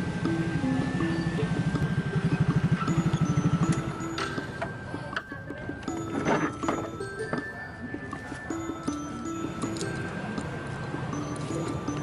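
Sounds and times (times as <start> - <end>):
scooter engine idling: 0.0 - 4.9
background music: 0.0 - 12.0.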